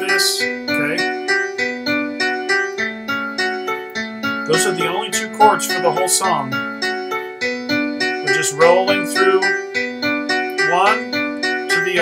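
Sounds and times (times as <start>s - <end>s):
slow rolling piano notes: 0.0s - 12.0s.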